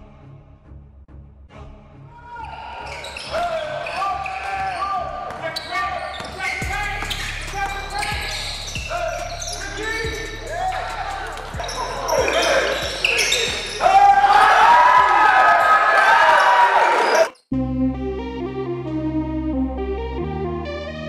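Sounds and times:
players calling and shouting: 2.2 - 17.4.

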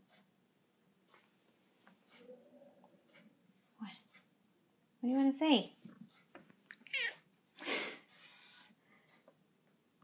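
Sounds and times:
cat meowing: 6.8 - 7.3.

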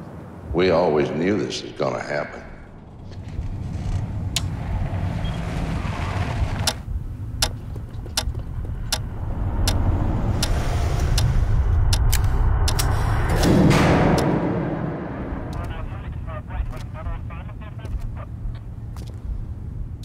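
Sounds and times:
low rumbling drone: 8.4 - 17.6
sharp clicks or hits: 10.4 - 15.8.

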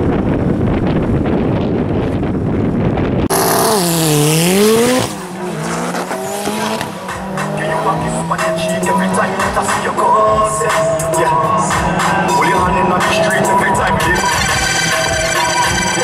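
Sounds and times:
engines accelerating away: 3.2 - 16.0.

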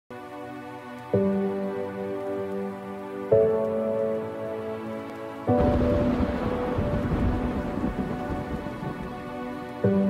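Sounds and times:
soft background music: 0.1 - 10.0.

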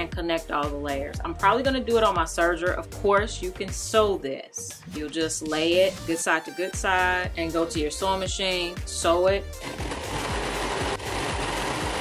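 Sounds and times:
overlock sewing machine running: 9.6 - 12.0.

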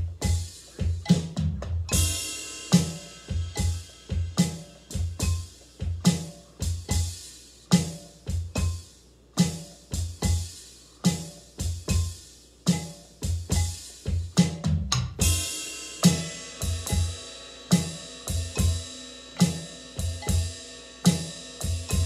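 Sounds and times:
drum kit groove: 0.0 - 22.0
cymbal crash: 2.0 - 5.2, 15.2 - 22.0.

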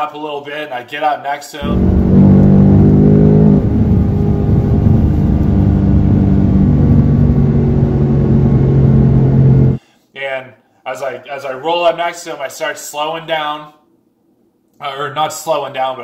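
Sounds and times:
car engine drone from cabin: 1.6 - 9.8.

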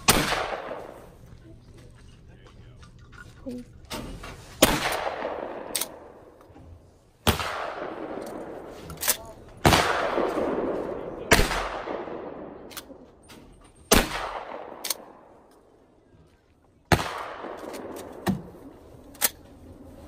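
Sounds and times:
shotgun shots with echo: 0.0 - 1.1, 4.6 - 6.2, 7.2 - 8.7, 9.6 - 13.0, 13.9 - 15.3, 16.9 - 18.6.

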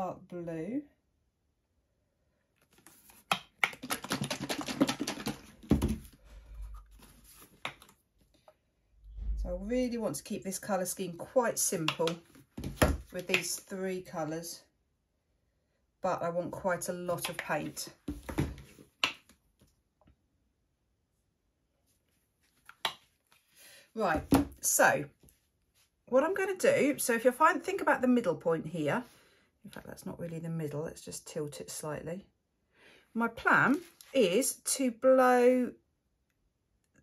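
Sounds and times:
plastic cups clicking and tapping: 3.2 - 6.1.

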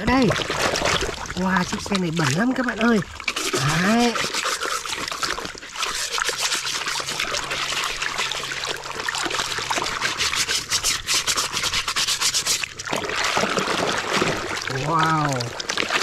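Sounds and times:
water sloshing and splashing: 0.0 - 16.0
plastic brush scrubbing plastic: 3.2 - 8.7, 9.7 - 12.8.

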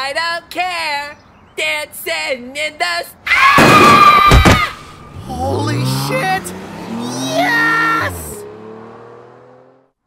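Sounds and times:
car engine revving: 4.9 - 10.0.

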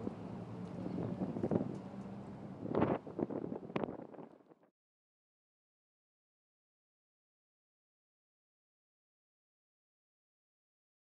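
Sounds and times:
low steady engine hum: 0.0 - 4.7
wind buffeting microphone: 0.0 - 4.7.

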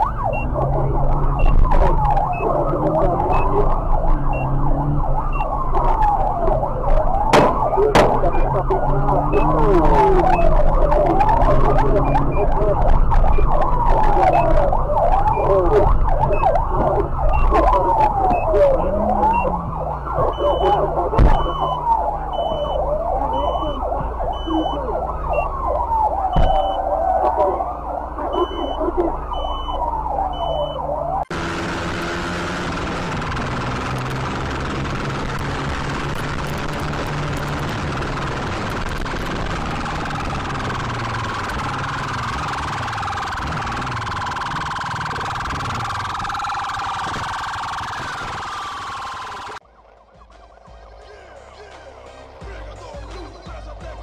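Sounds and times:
emergency siren wailing: 0.0 - 54.0
traffic: 0.0 - 54.0
short high beeps: 20.3 - 21.8, 28.3 - 29.8
steady rushing noise: 31.3 - 50.4.

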